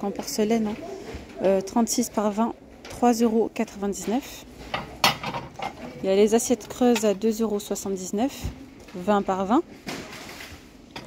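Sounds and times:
porcelain plates clinking: 4.8s - 7.4s.

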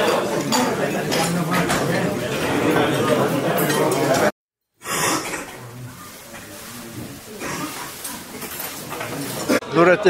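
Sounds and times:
indistinct voices: 0.0s - 10.0s
room noise: 0.0s - 10.0s.

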